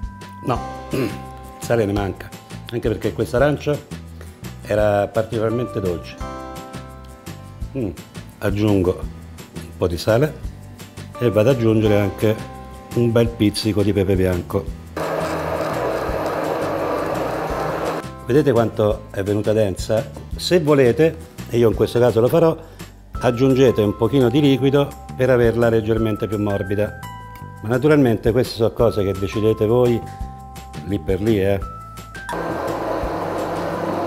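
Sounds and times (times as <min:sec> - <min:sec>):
background music: 0:00.0 - 0:34.0
immersion blender running: 0:15.0 - 0:18.0, 0:32.3 - 0:34.0.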